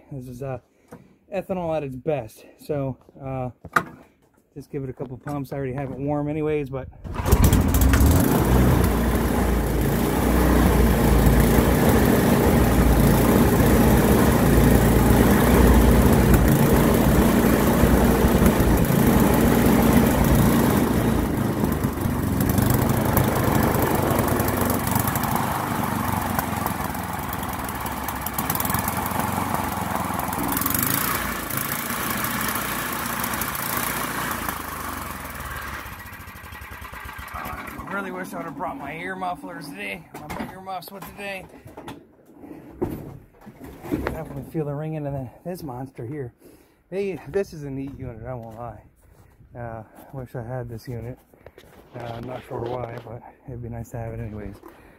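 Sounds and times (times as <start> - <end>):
small gasoline engine running: 7.1 - 38.3.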